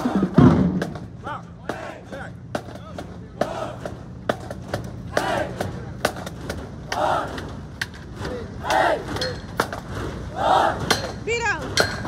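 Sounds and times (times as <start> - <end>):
people shouting a chant: 0.0 - 0.4, 1.2 - 4.1, 5.1 - 5.9, 6.8 - 7.6, 8.2 - 9.4, 10.2 - 11.5.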